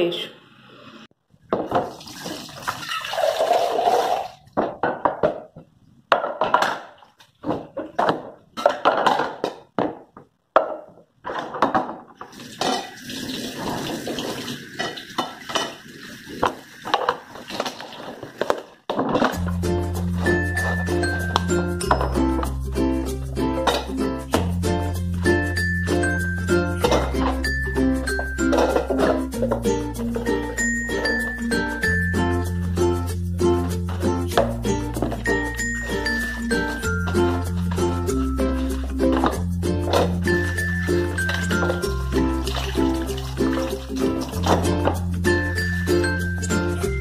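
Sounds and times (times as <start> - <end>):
tap water running and splashing: 1.6 - 4.5, 12.2 - 18.8, 41.2 - 45.1
dishes knocking and clinking: 4.6 - 13.0, 14.1 - 22.5, 23.6 - 24.6, 26.7 - 31.4
background music: 19.2 - 47.0.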